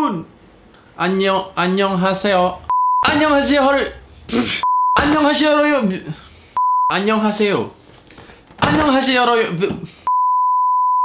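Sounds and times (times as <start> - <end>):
man talking: 1.0 - 6.3, 6.9 - 7.8, 8.6 - 10.0
censor bleep: 2.7 - 3.0, 4.6 - 5.0, 10.1 - 11.0.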